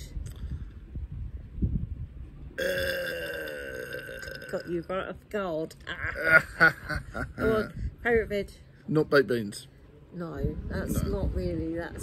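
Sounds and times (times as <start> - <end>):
low rumble: 0.0 - 3.2, 10.0 - 12.0.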